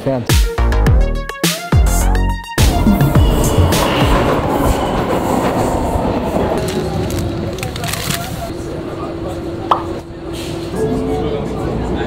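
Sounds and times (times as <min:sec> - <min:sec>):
faint whine: 0:02.6 - 0:10.3
train wheels rumbling on rails: 0:02.6 - 0:10.7.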